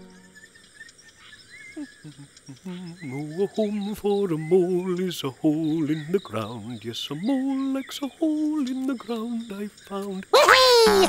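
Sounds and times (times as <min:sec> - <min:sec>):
birds chirping: 0:00.0 - 0:11.0
insects: 0:00.0 - 0:11.0.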